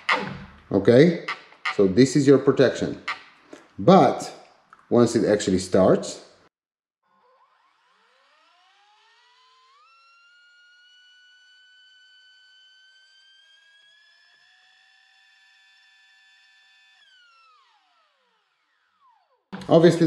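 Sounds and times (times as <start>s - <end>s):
electric motor whine: 7.1s - 20.0s.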